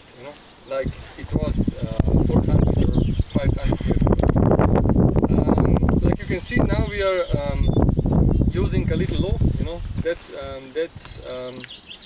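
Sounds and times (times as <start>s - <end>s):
wind buffeting microphone: 0.7s - 11.9s.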